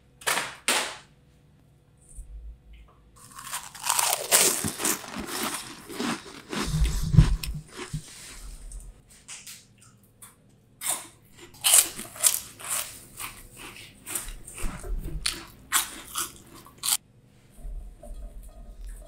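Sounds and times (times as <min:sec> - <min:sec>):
crunchy snack chewing: 0:03.2 - 0:08.9, 0:10.8 - 0:17.0.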